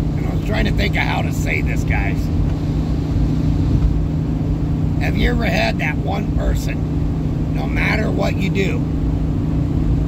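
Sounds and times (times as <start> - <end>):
vehicle cabin engine and road drone: 0.0 - 10.0.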